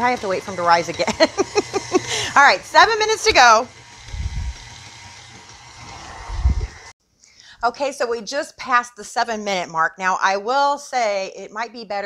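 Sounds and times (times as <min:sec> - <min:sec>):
stand mixer motor whine: 0:00.0 - 0:06.9.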